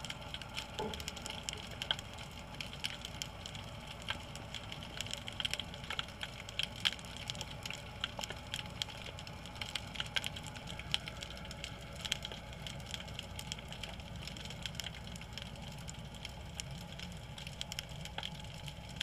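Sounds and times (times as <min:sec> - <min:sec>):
underwater crackle of clicks: 0:00.0 - 0:19.0
low underwater rumble: 0:00.3 - 0:02.6.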